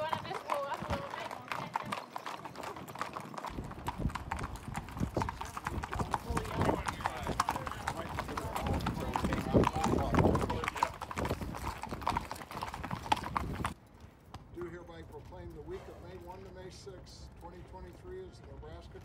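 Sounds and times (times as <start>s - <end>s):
people talking: 0.0s - 1.9s, 6.1s - 11.0s, 14.6s - 19.0s
horse hooves clip-clopping on pavement: 0.0s - 19.0s.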